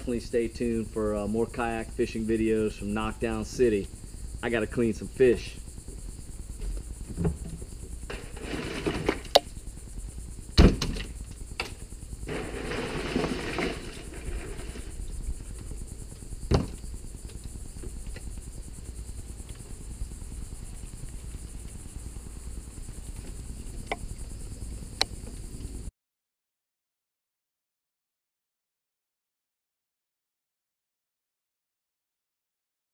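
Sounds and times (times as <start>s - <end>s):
insects chirring: 0.0s - 25.9s
rustling: 6.6s - 9.6s, 12.3s - 15.8s.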